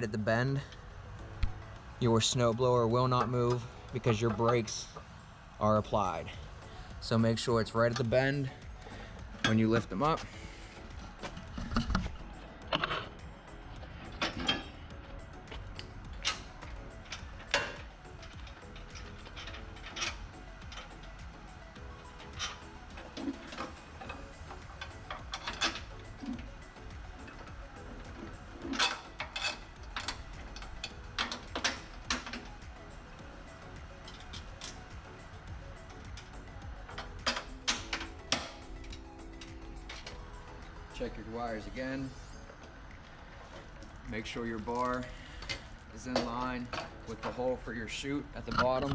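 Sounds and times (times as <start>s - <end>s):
steady background hum: 0.0s - 48.9s
metal clicks and knocks: 22.0s - 32.6s, 36.0s - 40.7s.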